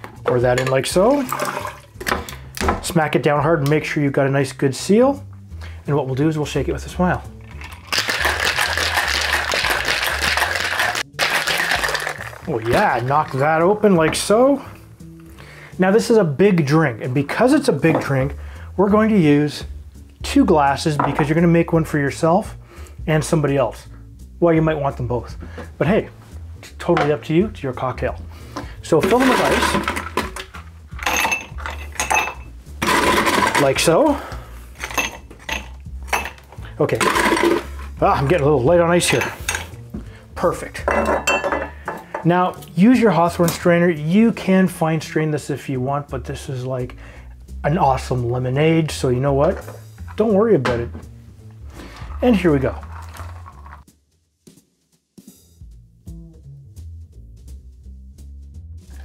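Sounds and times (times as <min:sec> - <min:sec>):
ice rattling in shaker tin: 0:01.1 - 0:01.8, 0:07.5 - 0:13.4, 0:29.0 - 0:33.8, 0:37.0 - 0:37.8, 0:52.0 - 0:53.8.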